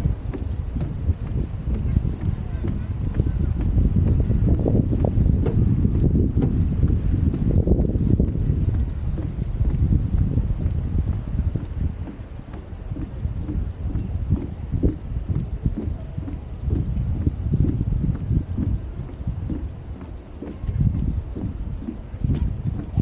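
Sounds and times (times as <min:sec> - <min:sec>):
footsteps on wooden boardwalk: 0:00.0 - 0:23.0
wind buffeting microphone: 0:00.0 - 0:23.0.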